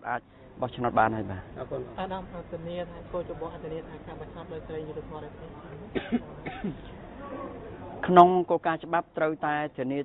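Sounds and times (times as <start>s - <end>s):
faint background speech: 0.1s - 8.2s
person coughing: 6.0s - 6.8s.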